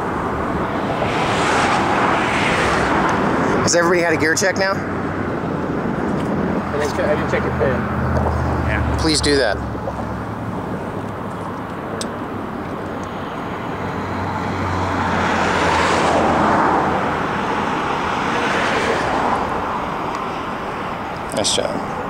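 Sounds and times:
highway traffic passing: 0.0 - 22.0.

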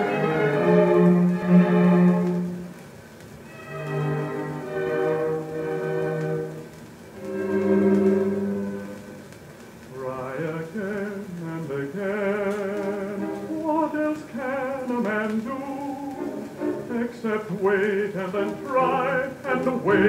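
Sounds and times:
orchestral music on old record: 0.0 - 20.0.

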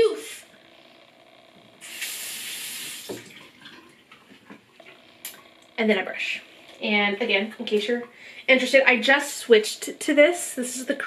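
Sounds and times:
sink tap running: 1.5 - 10.0.

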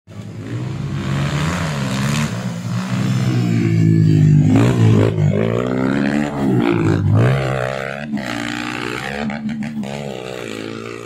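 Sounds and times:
dirt bike engine revving: 0.1 - 11.0.

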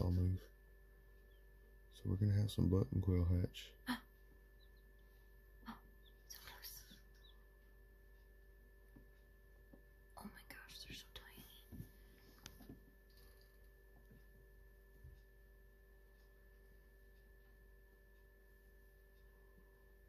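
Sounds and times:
faint steady hum: 0.0 - 20.0
faint whispered voices: 5.7 - 7.1, 10.2 - 11.7.

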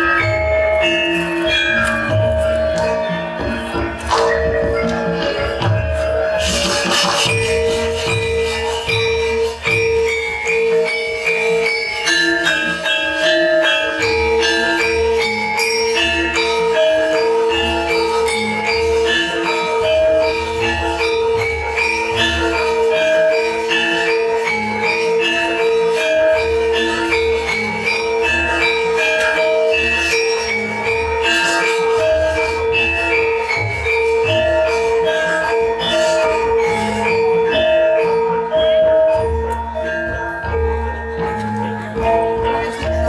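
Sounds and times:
gamelan metallophones ringing: 0.0 - 43.0.

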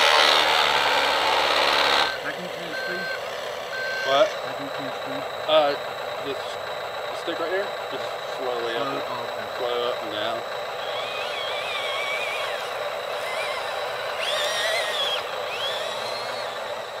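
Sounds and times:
steady high-pitched tone: 2.1 - 17.0
birds chirping: 10.6 - 17.0.

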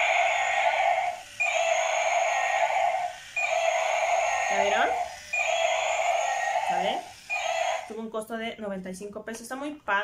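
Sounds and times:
toy buzzy electronic sound effect: 0.0 - 8.1.

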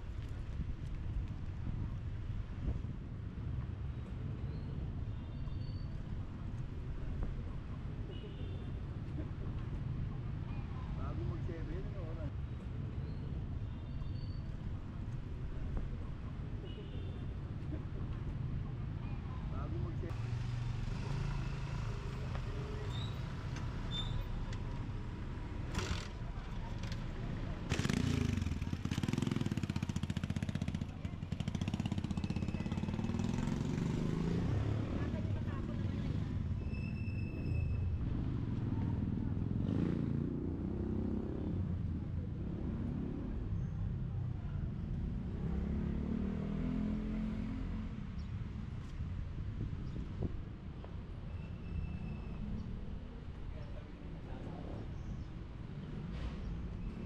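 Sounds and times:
vehicle engines rumbling: 0.0 - 57.0
vehicle passing: 27.2 - 36.6, 45.0 - 48.1.

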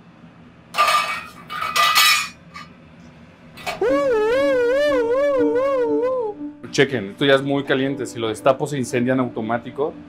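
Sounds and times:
metal lid clattering on saucepan: 0.8 - 2.4.

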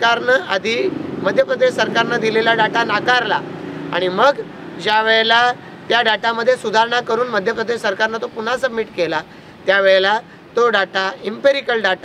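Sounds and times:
vehicle passing: 0.0 - 10.6
man speaking: 0.0 - 12.0.

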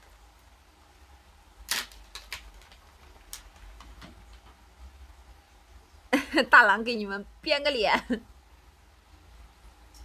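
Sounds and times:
sharp crackle: 1.6 - 4.4
faint packaging rustling: 1.7 - 4.6.

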